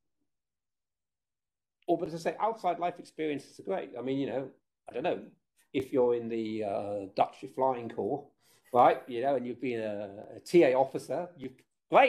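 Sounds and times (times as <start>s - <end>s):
man speaking: 1.9s - 12.0s.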